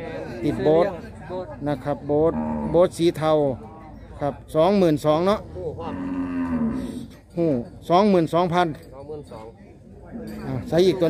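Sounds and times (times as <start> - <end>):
cow mooing: 2.3 - 2.8, 5.8 - 7.2.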